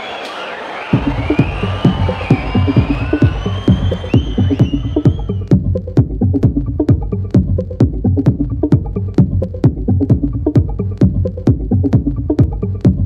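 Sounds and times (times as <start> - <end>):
crowd noise: 0.0 - 5.5
techno kick and bass beat: 0.9 - 13.0.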